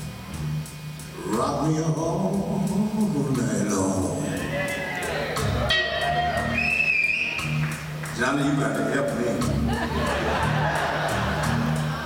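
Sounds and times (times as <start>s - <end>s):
electric blues band playing: 0.0s - 12.0s
bending high guitar note: 4.4s - 7.7s.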